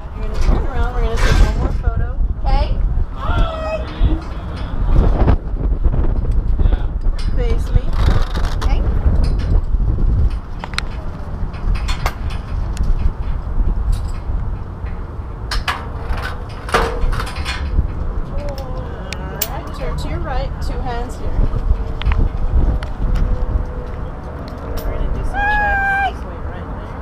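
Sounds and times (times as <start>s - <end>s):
wind buffeting microphone: 0.0s - 27.0s
sharp clicks and knocks: 7.0s - 18.7s
faint voices: 18.2s - 21.8s, 23.9s - 27.0s.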